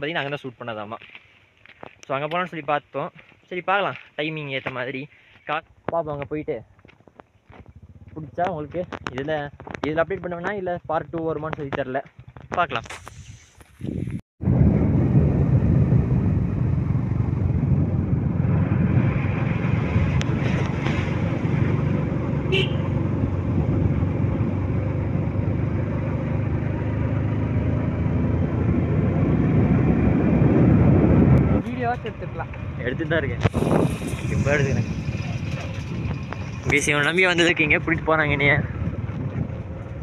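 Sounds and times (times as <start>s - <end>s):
motorcycle engine running: 7.4s - 12.5s, 14.7s - 40.0s
wind rushing over microphone: 7.5s - 40.0s.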